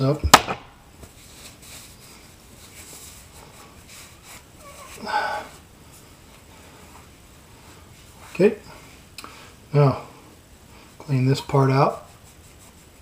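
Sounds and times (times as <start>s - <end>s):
cloth rag wiping surface: 1.0s - 9.1s, 11.5s - 13.0s
person sniffing: 3.4s - 5.6s.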